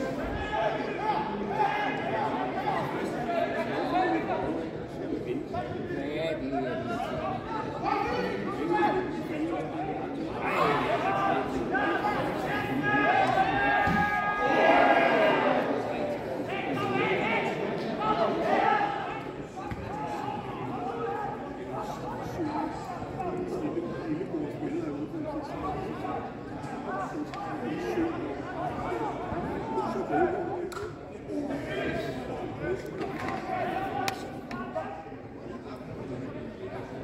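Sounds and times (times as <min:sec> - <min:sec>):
players shouting: 0:10.4 - 0:23.2.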